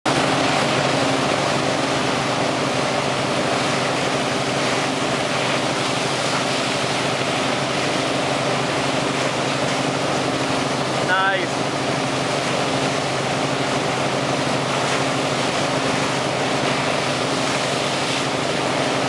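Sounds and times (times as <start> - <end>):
boat engine droning: 0.1 - 19.0
rush of churning wake: 0.1 - 19.0.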